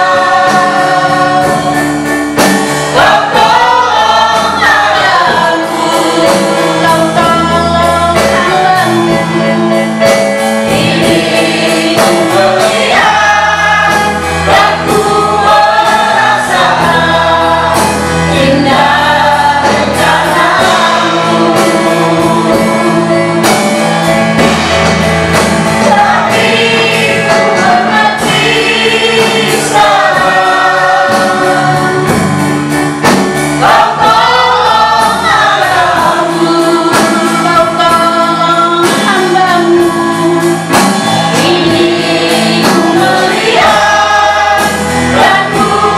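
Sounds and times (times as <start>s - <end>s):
electric keyboard chords: 0.0s - 45.9s
group singing worship song: 0.0s - 45.9s
guitar: 0.0s - 45.9s.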